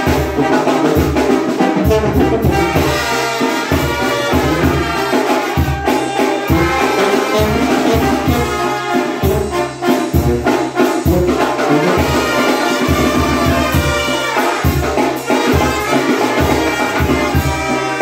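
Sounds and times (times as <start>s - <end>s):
brass band playing live: 0.0s - 18.0s
drums and cymbals: 0.0s - 18.0s
trumpets: 0.0s - 18.0s.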